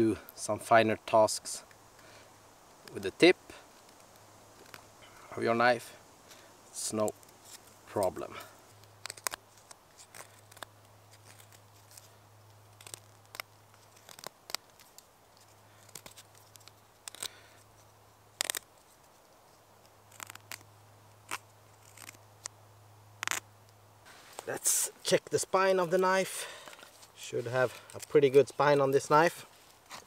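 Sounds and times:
knife scraping wooden stick: 21.3 - 22.2.

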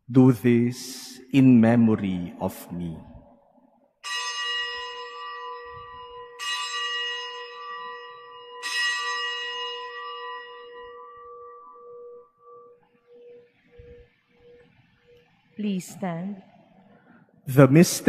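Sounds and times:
altar bell ringing: 4.0 - 15.2.

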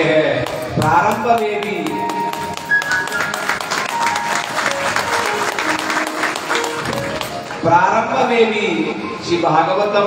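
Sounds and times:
rhythmic hand clapping: 0.4 - 7.6
instrumental music sustained notes: 0.6 - 9.8.

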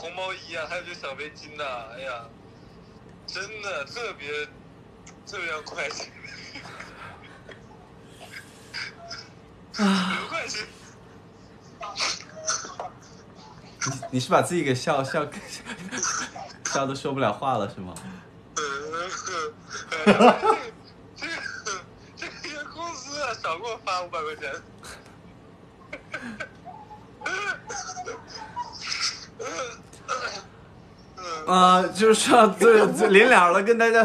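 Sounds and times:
men laughing: 5.8 - 10.8, 15.1 - 16.8, 19.7 - 23.2, 25.8 - 29.7, 32.3 - 33.3
man laughing breathily: 6.2 - 9.0, 26.0 - 26.6.

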